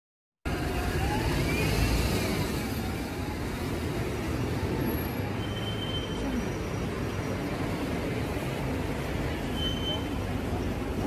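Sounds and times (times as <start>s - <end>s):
street traffic rumble: 0.4s - 11.0s.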